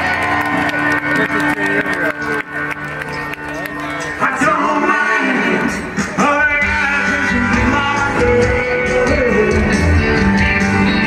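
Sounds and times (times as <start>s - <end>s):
amplified rock music: 0.0s - 11.0s.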